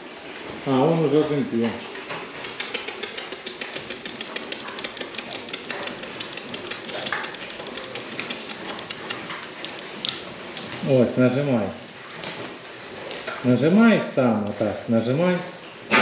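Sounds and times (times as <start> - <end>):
piglet hooves clicking on floor: 2.4 - 10.7, 11.8 - 13.5.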